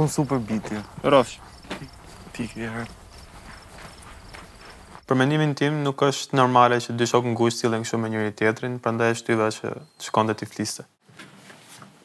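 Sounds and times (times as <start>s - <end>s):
crickets chirping: 0.0s - 5.2s.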